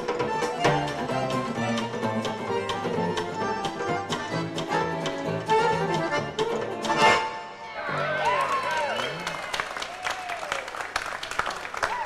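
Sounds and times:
button accordion melody: 0:00.0 - 0:07.6
electric guitar: 0:00.0 - 0:09.3.

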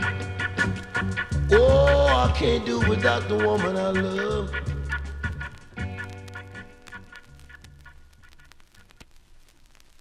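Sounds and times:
song: 0:00.0 - 0:07.1
vinyl crackles: 0:00.0 - 0:10.0
vinyl surface noise: 0:03.0 - 0:10.0.

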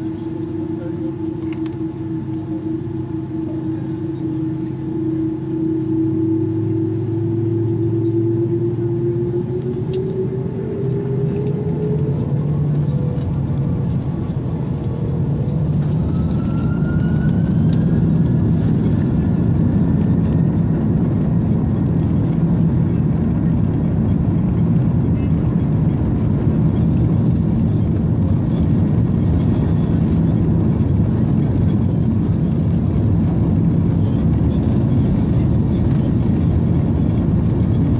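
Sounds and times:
jet engines spooling up: 0:00.0 - 0:37.9
loud steady engine rumble: 0:00.0 - 0:37.9
rising engine whine: 0:00.0 - 0:37.9.

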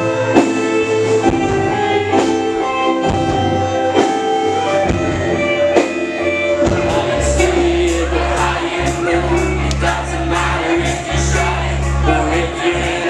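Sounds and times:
electric guitar: 0:00.0 - 0:13.0
keyboard notes: 0:00.0 - 0:13.0.

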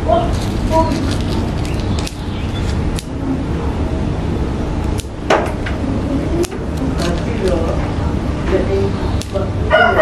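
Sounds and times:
low background rumble: 0:00.0 - 0:10.0
pruning scissors snipping: 0:00.4 - 0:03.2, 0:04.8 - 0:05.2, 0:06.4 - 0:07.8, 0:09.2 - 0:09.5.

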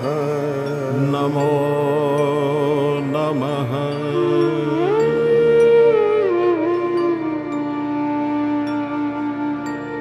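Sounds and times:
devotional chant singing: 0:00.0 - 0:05.6.

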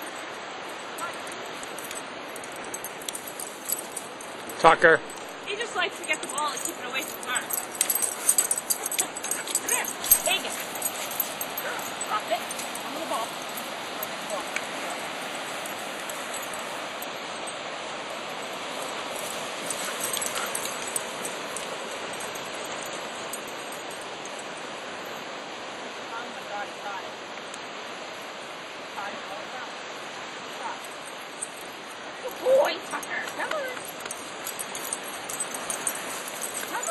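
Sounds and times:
ocean surf rushing: 0:00.0 - 0:27.3.

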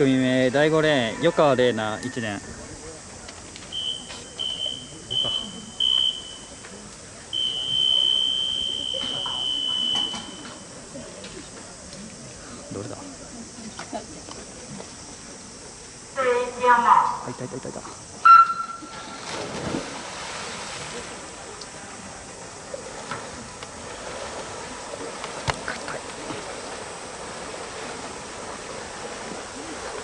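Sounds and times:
short high whistle blasts: 0:18.2 - 0:19.2
swimmers diving splash: 0:18.2 - 0:30.0.

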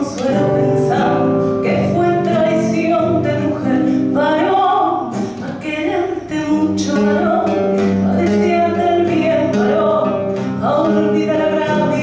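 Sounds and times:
classical guitar: 0:00.0 - 0:12.0
woman singing a tango: 0:00.0 - 0:12.0.

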